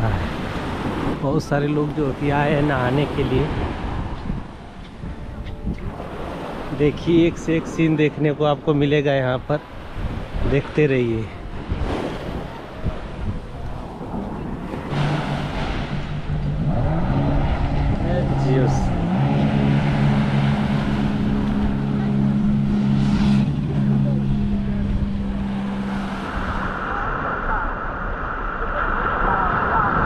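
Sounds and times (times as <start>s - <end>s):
jet ski engine running: 9.7s - 27.8s.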